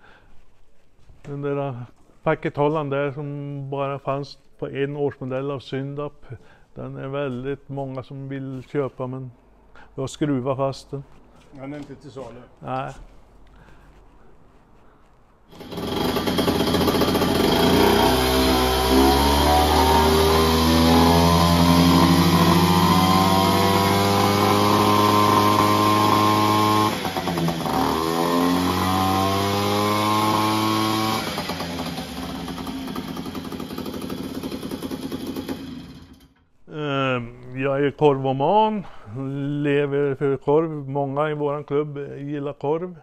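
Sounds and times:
moped engine revving: 15.5s - 36.4s.

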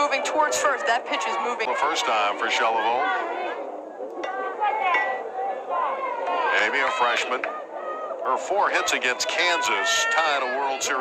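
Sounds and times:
people talking: 0.0s - 3.6s, 4.2s - 11.0s
crowd chatter: 0.0s - 11.0s.

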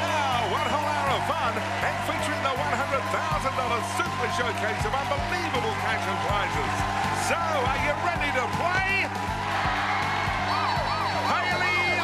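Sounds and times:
audience cheering and clapping: 0.0s - 12.0s
upbeat game show music: 0.0s - 12.0s.

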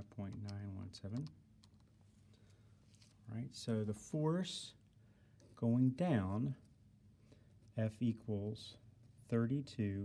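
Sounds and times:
calculator keys clicking: 0.0s - 1.9s.

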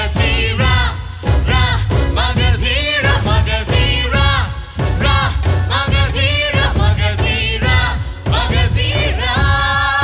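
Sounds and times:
instrumental backing music: 0.0s - 10.0s.

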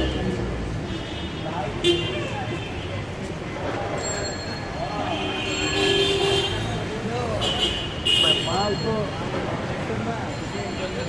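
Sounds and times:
crowd chatter: 0.0s - 11.0s
traffic: 0.0s - 11.0s.

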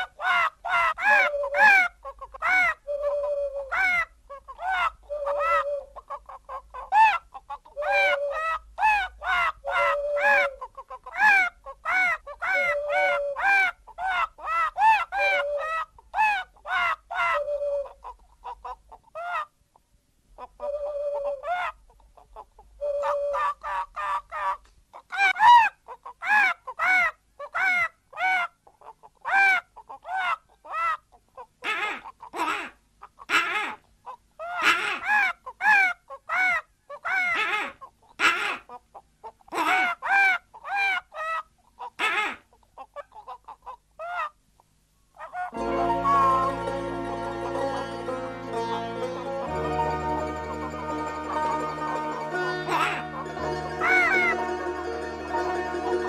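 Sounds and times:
hen-like clucking and bird calls: 0.0s - 56.0s.

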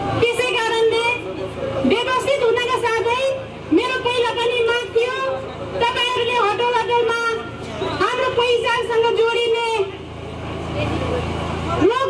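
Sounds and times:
woman speaking over loudspeaker: 0.1s - 10.0s, 10.8s - 12.0s.

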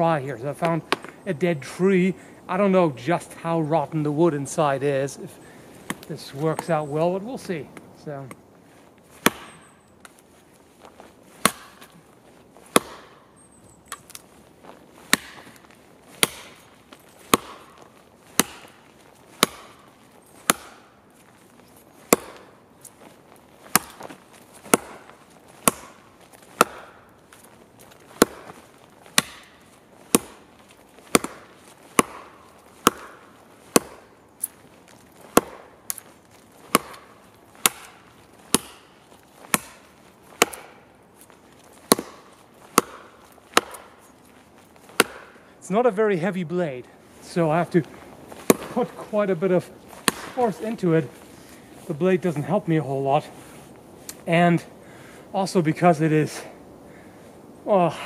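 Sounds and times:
blade chopping into wood: 9.2s - 10.2s, 11.4s - 12.0s, 12.6s - 13.2s, 15.0s - 21.0s, 22.0s - 22.9s, 23.6s - 45.5s, 47.7s - 50.9s.

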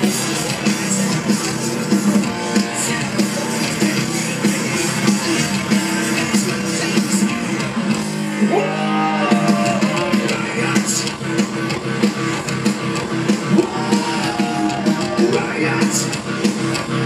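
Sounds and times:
bass guitar: 0.0s - 17.0s
distorted electric guitar: 0.0s - 17.0s
drums: 0.0s - 17.0s.

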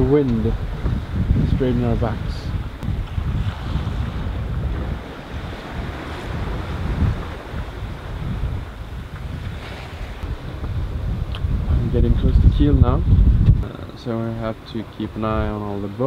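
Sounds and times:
waves washing: 0.0s - 16.0s
wind buffeting microphone: 0.0s - 16.0s.

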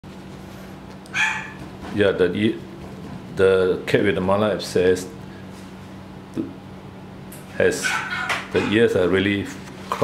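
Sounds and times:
low electrical hum: 0.1s - 10.0s
high-pitched animal cry: 1.1s - 1.6s, 7.8s - 8.8s.

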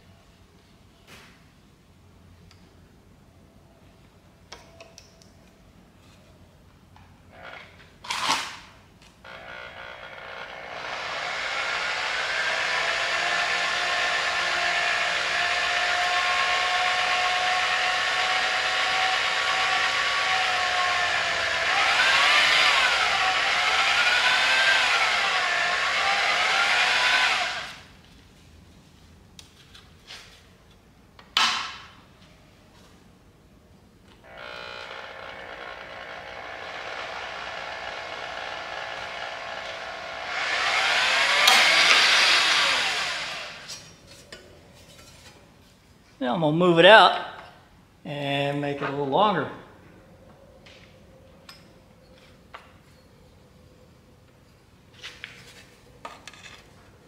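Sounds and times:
electric drill whining: 9.3s - 27.9s, 34.2s - 43.9s.

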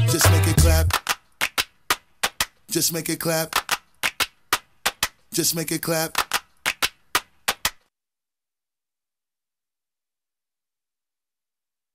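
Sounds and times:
sharp percussion claps: 0.0s - 2.7s, 3.3s - 7.9s.

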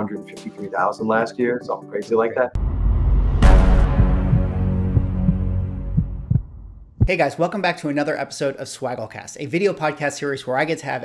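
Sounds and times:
deep thuds: 2.6s - 7.1s.

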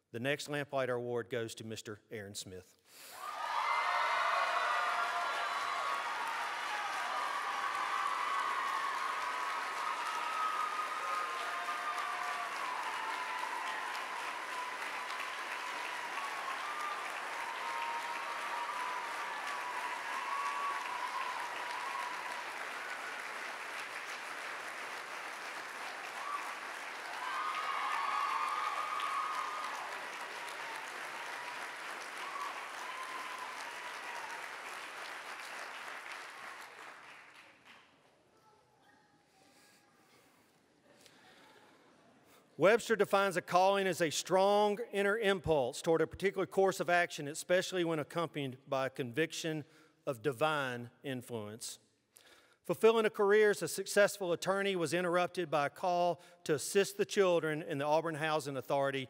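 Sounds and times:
people cheering: 3.1s - 37.7s
audience applauding: 3.2s - 38.0s.

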